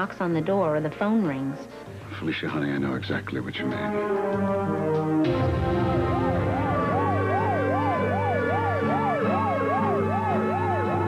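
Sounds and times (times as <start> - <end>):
held music chords: 3.7 - 11.0
fast wailing siren: 5.6 - 11.0.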